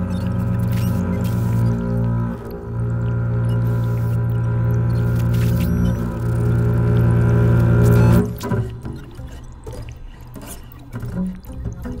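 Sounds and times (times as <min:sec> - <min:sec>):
low double bass drone: 0:00.0 - 0:08.9.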